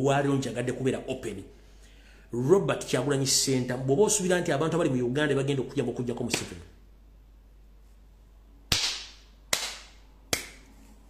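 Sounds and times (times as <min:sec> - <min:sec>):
faint steady hum: 0:00.0 - 0:11.0
sharp cracks: 0:08.7 - 0:10.6.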